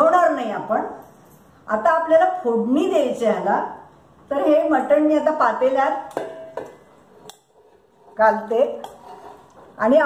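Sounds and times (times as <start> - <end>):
woman's voice: 1.7 - 6.1, 9.8 - 10.0.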